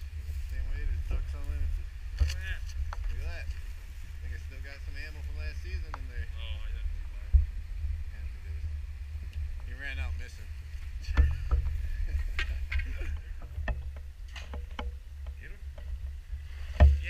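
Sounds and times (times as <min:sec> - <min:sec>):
camera handling rumble: 0:02.1 - 0:03.6.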